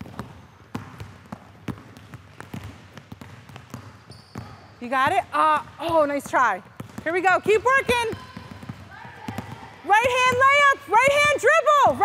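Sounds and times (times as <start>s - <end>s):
basketballs bouncing on wooden floor: 0.0s - 12.0s.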